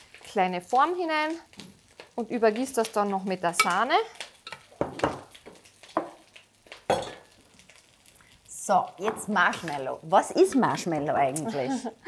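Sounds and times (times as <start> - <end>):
kitchenware knocks and clinks: 6.9 - 7.2.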